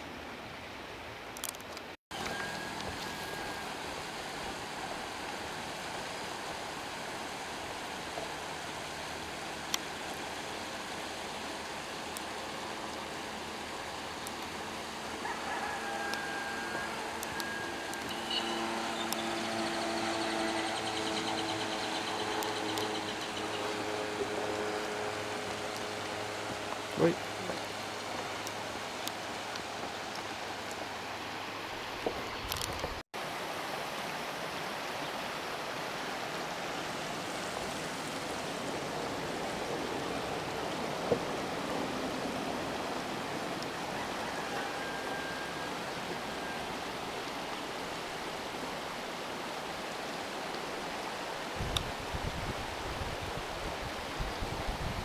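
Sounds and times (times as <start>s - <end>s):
river running over stones: 0.0s - 55.0s.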